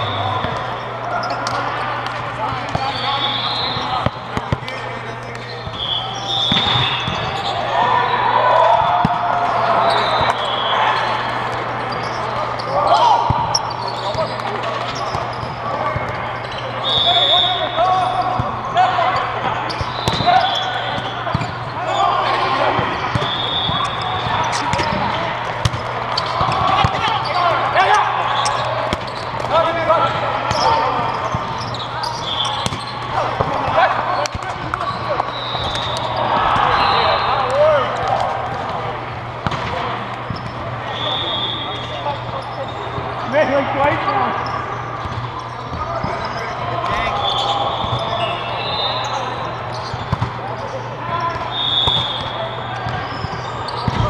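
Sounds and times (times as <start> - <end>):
shoes squeaking on court: 0.0 - 8.2, 8.8 - 54.0
players calling: 0.0 - 54.0
volleyball being hit: 39.4 - 40.4.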